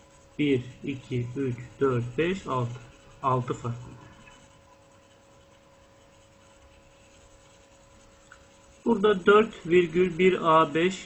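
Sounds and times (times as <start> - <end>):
faint steady hum: 0.0 - 11.0
stylus scratching on tablet: 0.0 - 11.0
man speaking: 0.4 - 4.1, 8.9 - 11.0.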